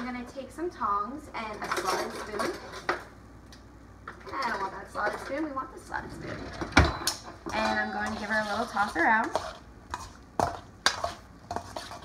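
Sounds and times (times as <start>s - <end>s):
tongs scraping metal bowl: 7.5s - 12.0s.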